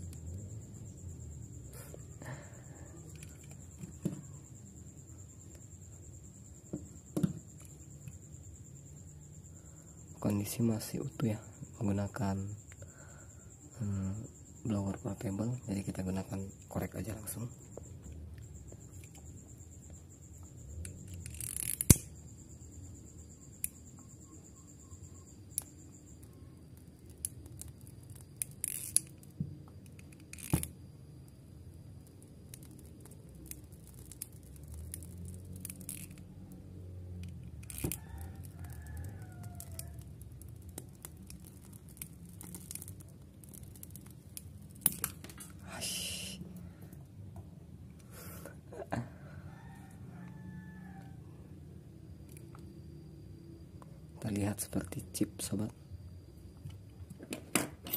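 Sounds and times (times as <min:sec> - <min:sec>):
lighter gas hiss: 0:45.6 - 0:46.6.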